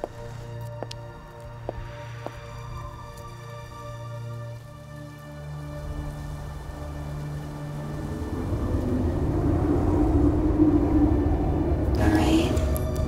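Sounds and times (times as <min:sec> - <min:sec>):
low rumbling drone: 0:00.0 - 0:13.0
rushing noise: 0:05.5 - 0:13.0.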